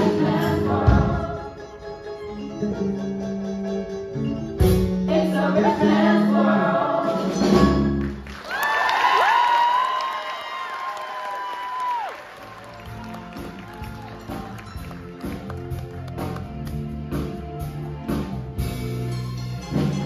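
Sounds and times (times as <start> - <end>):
pit band playing: 0.0 - 8.3, 11.8 - 20.0.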